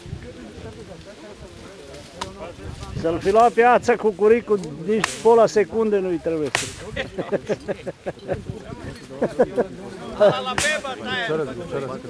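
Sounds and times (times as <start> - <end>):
axe striking a tree trunk: 5.0 - 5.3, 6.4 - 6.9, 10.6 - 10.8.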